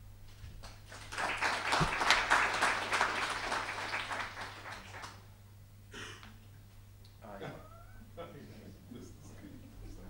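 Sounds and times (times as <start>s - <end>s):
audience applauding: 0.6s - 5.2s.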